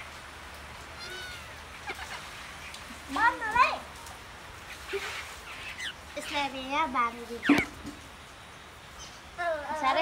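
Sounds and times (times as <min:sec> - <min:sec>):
kitten mewing: 0:01.0 - 0:02.1.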